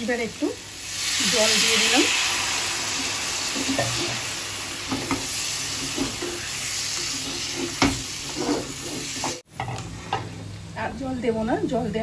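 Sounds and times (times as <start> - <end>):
curry sizzling in a pan: 0.0 - 11.5
spatula stirring: 4.9 - 9.4.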